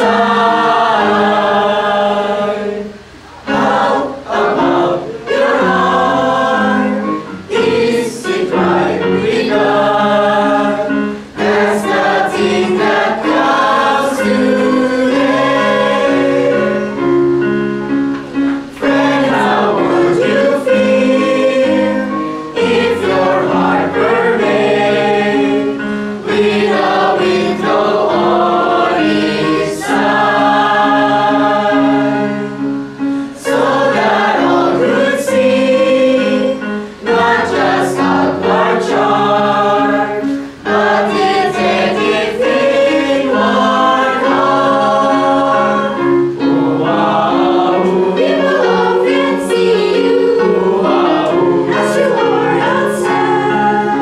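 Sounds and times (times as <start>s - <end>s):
choir singing gospel song: 0.0s - 54.0s
singers breathing: 33.0s - 33.4s.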